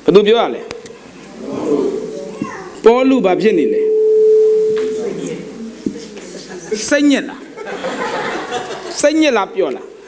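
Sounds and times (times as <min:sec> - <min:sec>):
steady pure tone: 0:01.6 - 0:06.0.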